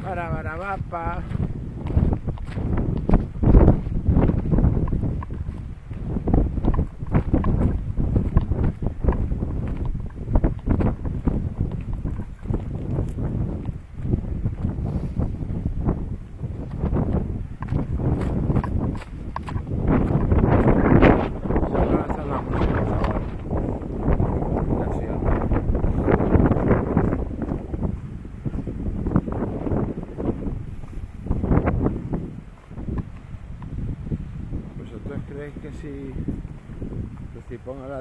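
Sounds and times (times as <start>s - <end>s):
footsteps on dirt path: 0.0s - 38.0s
wind buffeting microphone: 0.0s - 38.0s.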